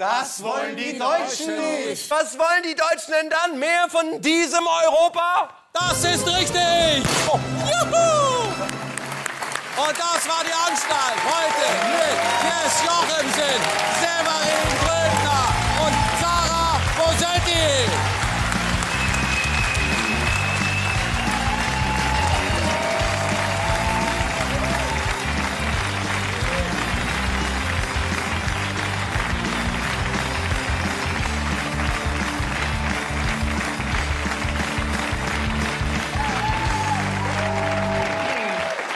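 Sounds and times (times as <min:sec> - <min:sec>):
audience applauding: 0:07.7 - 0:38.9
music with steady beat: 0:17.6 - 0:36.9.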